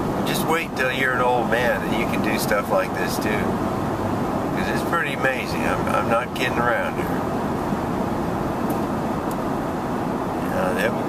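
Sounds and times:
road noise inside moving car: 0.0 - 11.0.

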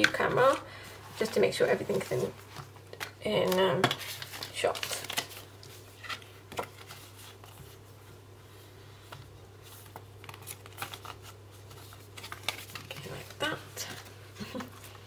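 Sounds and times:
paper banknotes rustling: 3.4 - 7.8, 9.6 - 15.0.

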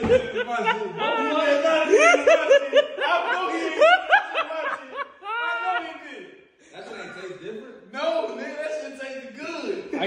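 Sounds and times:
men laughing: 0.0 - 7.4.

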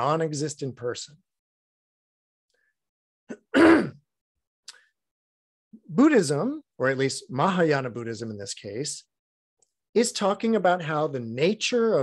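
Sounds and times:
man clearing his throat: 3.3 - 4.0.

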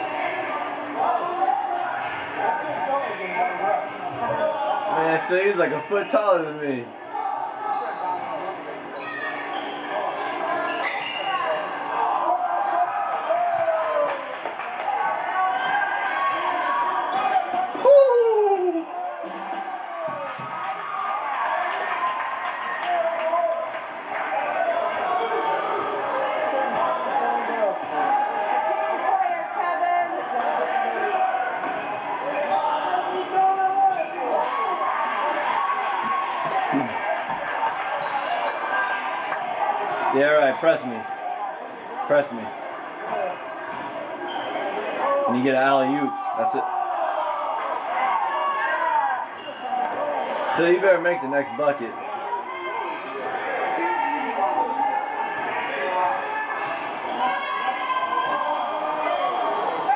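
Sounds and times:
voices calling in echoing hall: 0.0 - 59.9.

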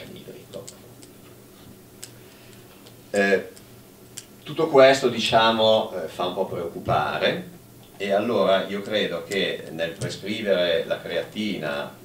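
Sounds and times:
faint room hum: 0.0 - 12.0
soft clicks: 0.5 - 1.2.

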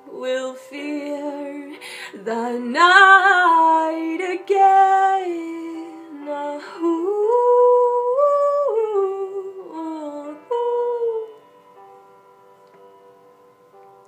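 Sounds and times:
instrumental backing music: 0.0 - 14.0.

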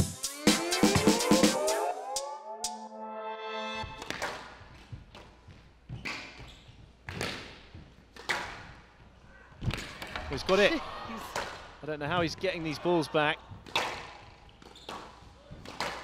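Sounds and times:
music stinger chord: 0.4 - 3.9
low hum of indoor arena: 3.9 - 16.0.

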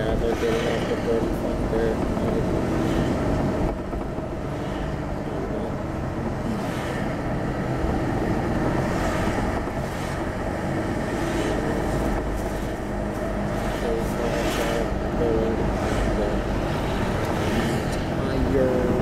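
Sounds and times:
car cabin road and engine noise: 0.0 - 19.0.

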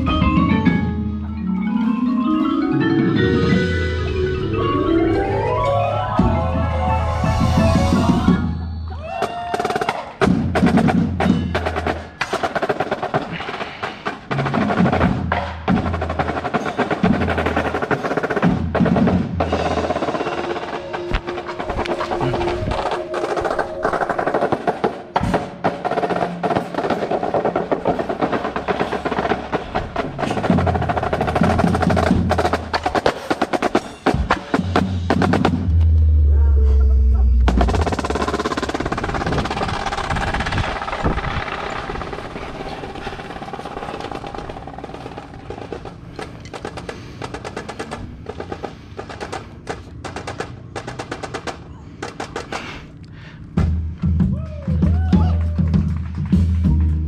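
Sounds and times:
deep sustained bass notes: 2.4 - 9.1, 35.0 - 41.4
drum strokes and rolls: 3.1 - 36.4, 37.1 - 51.6, 53.5 - 57.0.

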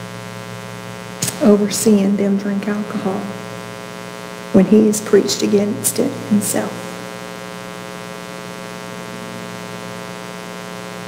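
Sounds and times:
electrical mains hum: 0.0 - 11.0
faint hiss: 1.0 - 11.0.

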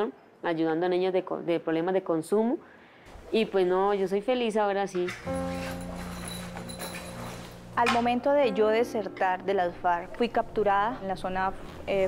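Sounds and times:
held music chord: 5.3 - 10.6.

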